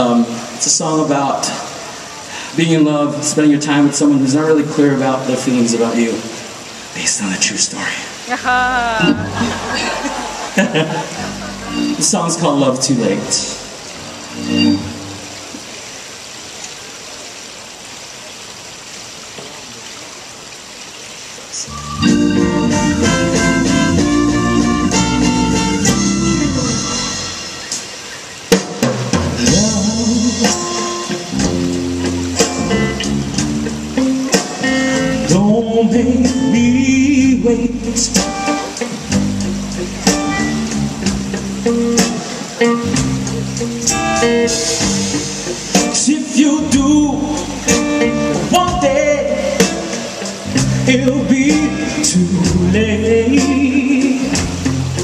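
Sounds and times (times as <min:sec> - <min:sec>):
guitar: 0:08.3 - 0:15.4, 0:21.7 - 0:27.8, 0:29.1 - 0:55.0
soul band playing: 0:08.3 - 0:15.6, 0:21.7 - 0:55.0
drum kit: 0:22.1 - 0:27.9, 0:28.5 - 0:55.0.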